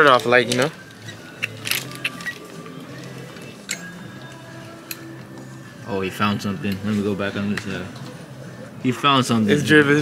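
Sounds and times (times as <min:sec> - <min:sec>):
plastic hangers clicking on metal rack: 0:00.0 - 0:02.6
music with held notes: 0:00.0 - 0:10.0.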